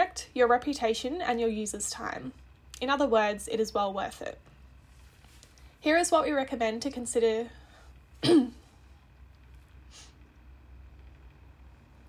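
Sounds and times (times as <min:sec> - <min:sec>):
woman clearing her throat: 0:08.2 - 0:08.6
short breathy hiss: 0:09.9 - 0:10.2.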